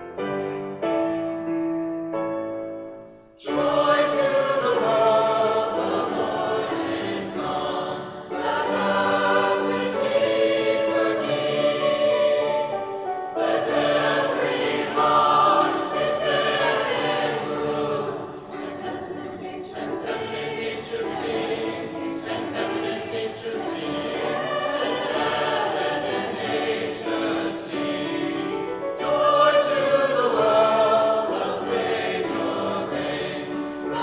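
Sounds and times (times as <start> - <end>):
piano accompaniment: 0.0 - 34.0
mixed choir singing: 3.4 - 34.0.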